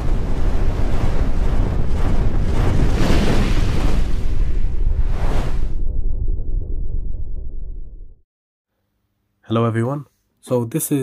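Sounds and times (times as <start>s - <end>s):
rumbling rush of noise: 0.0s - 8.2s.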